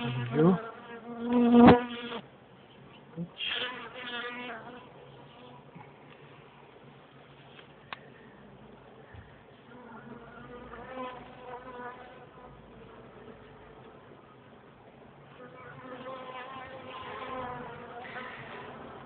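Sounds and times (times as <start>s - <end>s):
honeybees buzzing: 0.0s - 2.2s, 15.3s - 19.0s.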